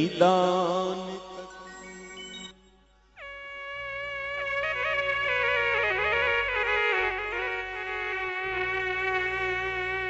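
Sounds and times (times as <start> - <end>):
low musical accompaniment: 3.2 - 10.0
reedy held note: 3.2 - 10.0.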